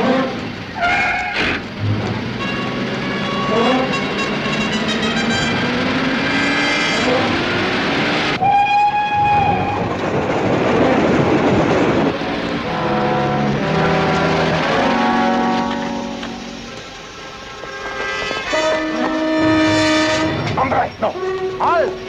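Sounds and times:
loud rumbling noise: 0.0s - 8.5s, 9.1s - 17.7s, 18.9s - 22.0s
held horn-like tone: 2.3s - 7.4s, 12.6s - 16.8s, 17.6s - 22.0s
dramatic music score: 12.0s - 22.0s.

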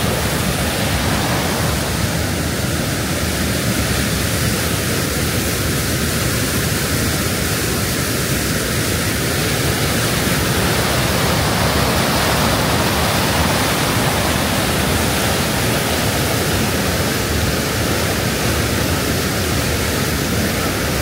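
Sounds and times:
river rapids rushing: 0.0s - 21.0s
small waterfall rushing: 0.0s - 21.0s.

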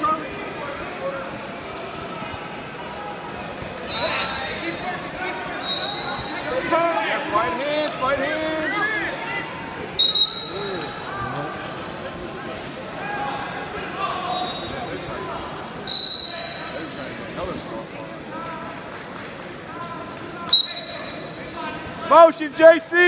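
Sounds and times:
hubbub of spectators' voices: 0.0s - 23.0s
referee's whistle blasts: 3.9s - 4.4s, 5.6s - 6.6s, 10.0s - 10.6s, 14.3s - 14.9s, 15.9s - 16.9s, 20.5s - 21.4s.

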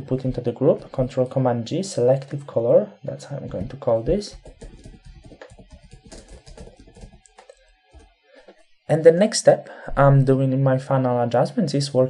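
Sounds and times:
computer keyboard typing: 3.5s - 8.1s.

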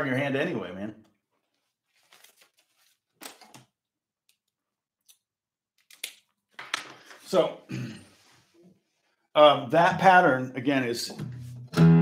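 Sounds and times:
paper notepad rustling: 1.4s - 3.6s.

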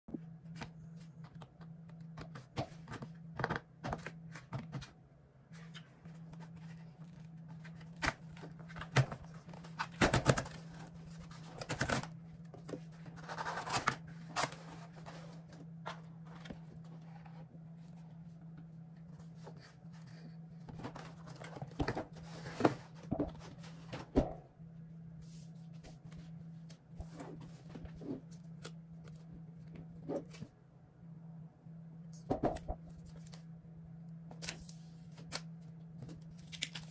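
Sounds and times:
steady low hum: 0.1s - 36.9s.

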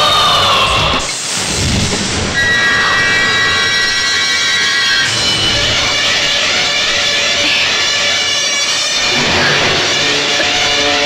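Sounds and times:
droning high held tones: 2.2s - 11.0s.

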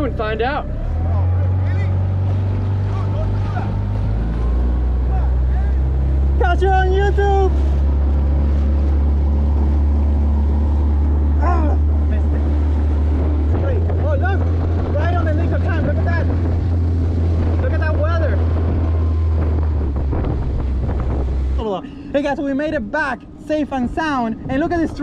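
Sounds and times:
outboard motor humming: 0.0s - 25.0s
water noise: 0.0s - 25.0s
wind noise: 1.9s - 25.0s.

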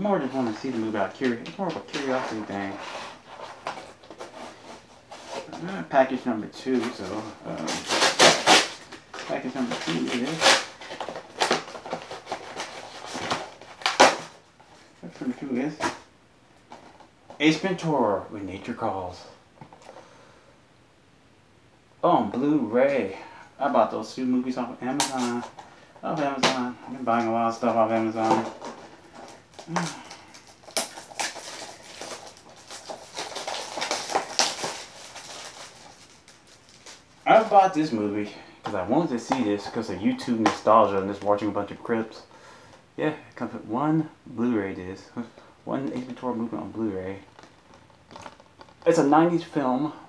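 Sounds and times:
paper mailer being torn: 6.8s - 14.3s, 29.3s - 37.0s
plastic wrap crinkling: 6.8s - 16.0s, 24.9s - 38.0s, 45.9s - 49.0s.

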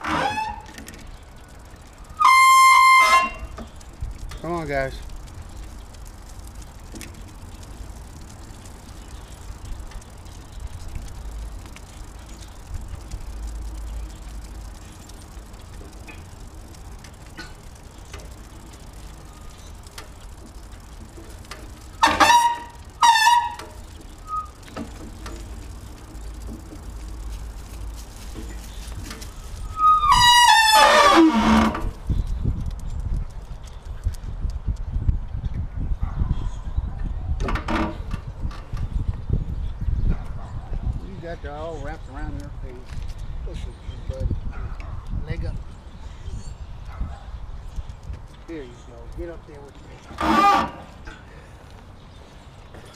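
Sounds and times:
steady low rumble: 3.3s - 30.3s.

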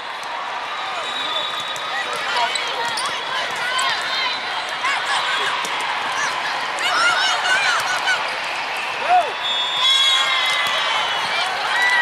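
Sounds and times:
hubbub of voices: 0.0s - 12.0s
volleyballs being hit and bouncing: 1.6s - 4.8s, 5.4s - 6.8s
sneaker squeaks on court: 2.4s - 3.6s.

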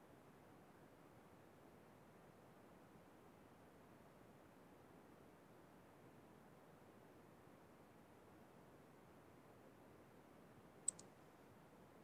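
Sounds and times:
quick clicks: 10.9s - 11.1s.

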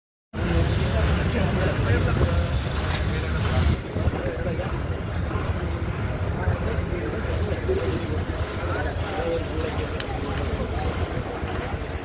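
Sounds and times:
bus engines rumbling: 0.4s - 12.0s
crowd chatter: 0.4s - 12.0s.

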